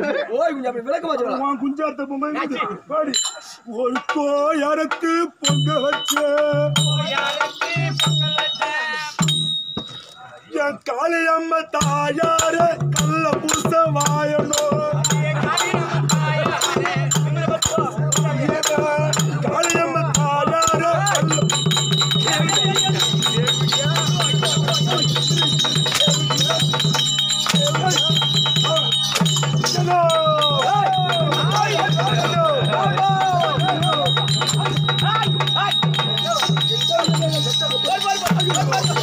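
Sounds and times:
rattling jingle: 3.1s - 4.1s, 5.4s - 10.4s, 20.6s - 39.0s
drum strokes: 3.2s - 10.2s, 11.8s - 39.0s
steady high tone: 21.1s - 39.0s.

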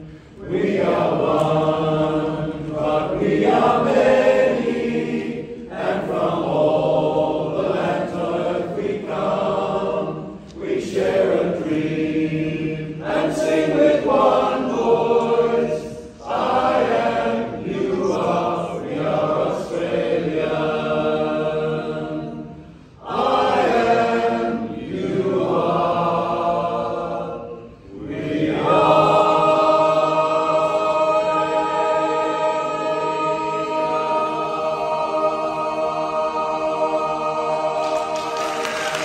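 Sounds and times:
men's chorus singing a cappella: 0.0s - 39.0s.

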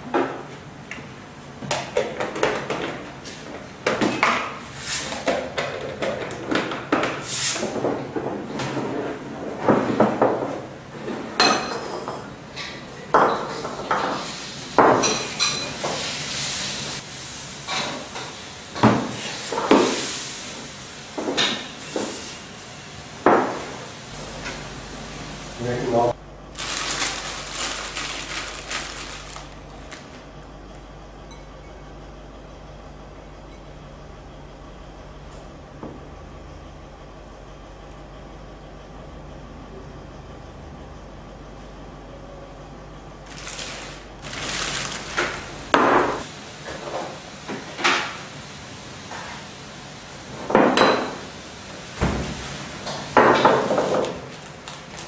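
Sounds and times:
hand rustling food in bowl: 26.6s - 30.2s, 43.3s - 45.7s.

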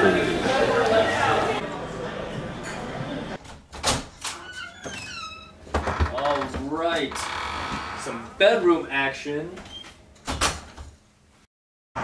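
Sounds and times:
door opening and closing: 3.4s - 8.4s, 9.6s - 11.0s.

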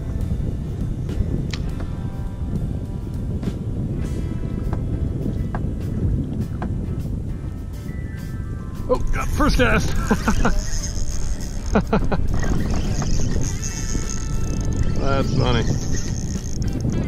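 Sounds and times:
wind buffeting microphone: 0.0s - 17.0s
faint background music: 12.4s - 17.0s.

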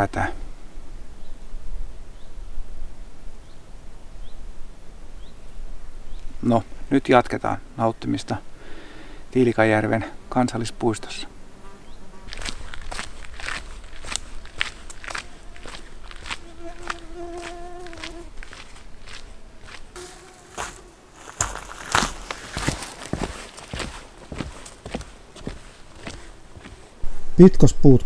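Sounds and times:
flying insect buzzing: 10.2s - 27.0s
boots crunching on gravel: 12.2s - 27.0s.

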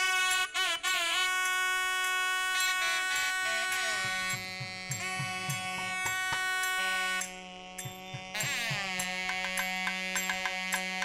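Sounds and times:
double-reed pipe playing held notes: 0.0s - 11.0s
low drum strokes: 4.0s - 6.6s.

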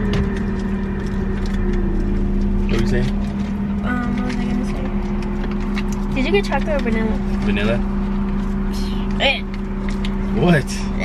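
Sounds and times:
car engine idling hum: 0.0s - 11.0s.

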